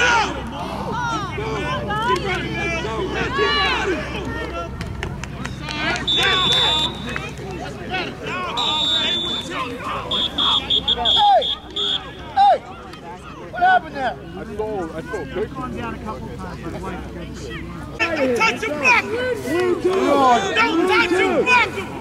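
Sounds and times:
people shouting: 0.0 - 4.4, 5.7 - 7.4, 8.0 - 12.7, 18.0 - 22.0
referee whistle blasts: 6.0 - 7.2, 8.6 - 12.3.

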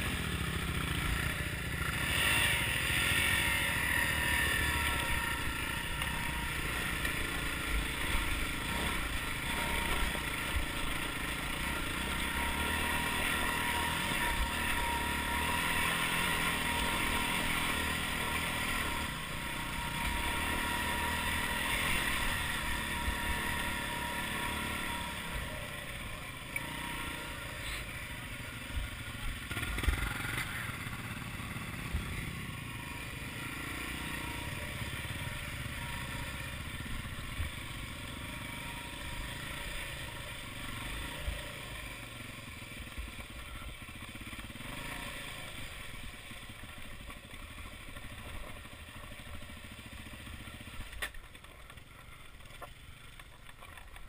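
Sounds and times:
motorcycle engine at low revs: 0.0 - 54.0
wheels knocking on stones: 50.9 - 54.0.

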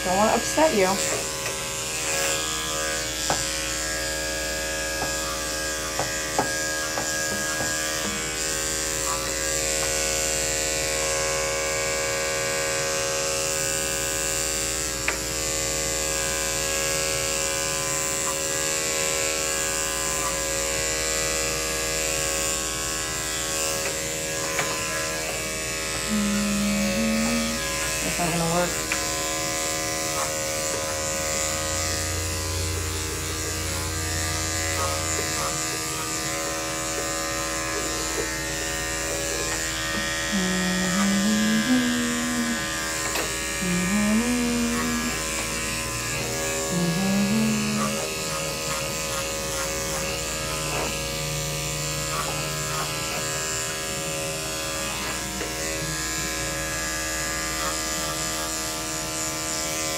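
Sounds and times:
electric pet clippers running: 0.0 - 59.9.

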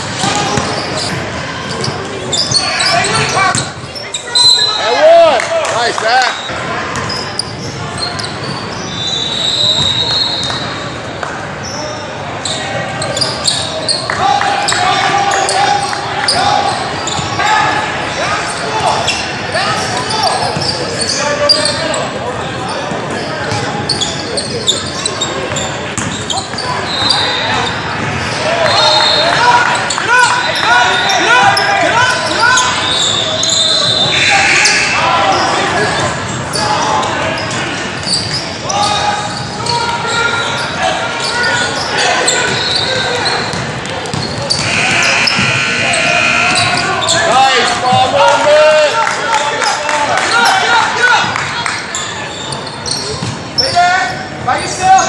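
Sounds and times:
crowd murmur: 0.0 - 55.0
spectators' voices echoing: 0.0 - 55.0
shoe squeaks: 0.2 - 5.0, 6.3 - 11.0, 11.6 - 14.1, 14.7 - 17.6, 18.4 - 22.1, 22.7 - 48.0, 51.9 - 55.0
people calling out: 2.3 - 5.4, 24.8 - 43.6, 44.4 - 55.0.

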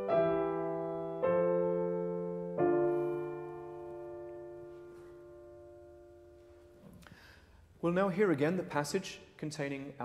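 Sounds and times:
piano chord: 0.0 - 7.0
man speaking: 7.8 - 10.0.

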